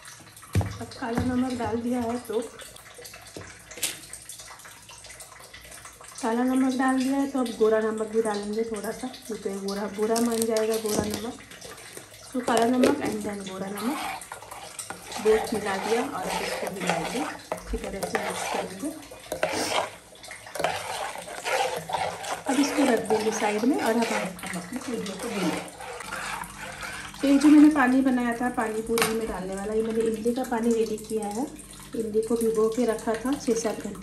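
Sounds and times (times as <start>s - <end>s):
liquid swishing and sloshing: 7.0s - 34.0s.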